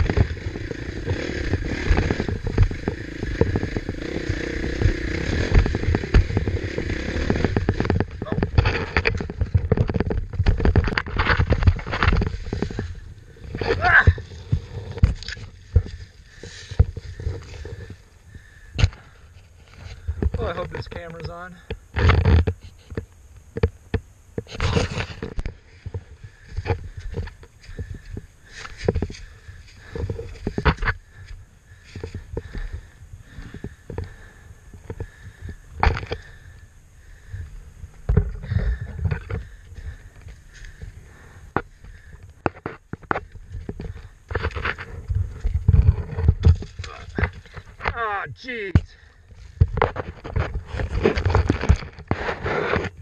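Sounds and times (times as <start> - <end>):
knocks and scrapes of bike: 0.0 - 48.0, 48.8 - 53.0.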